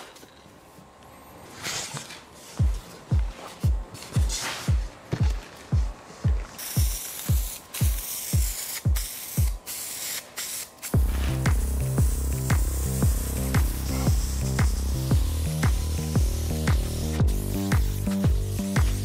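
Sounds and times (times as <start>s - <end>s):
electronic music with steady beat: 2.5s - 9.7s, 11.0s - 19.0s
aerosol spray can hissing: 6.6s - 19.0s.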